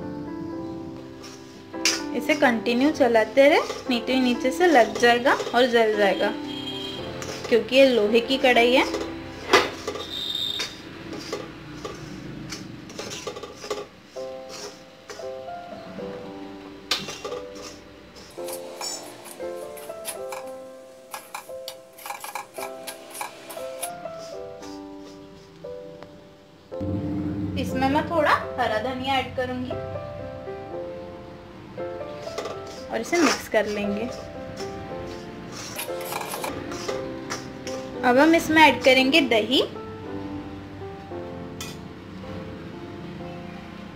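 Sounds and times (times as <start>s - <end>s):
background piano music: 0.0s - 43.9s
spatula scraping iron pan: 3.4s - 6.1s, 7.0s - 7.6s, 8.7s - 15.2s, 16.9s - 25.3s, 32.4s - 37.9s.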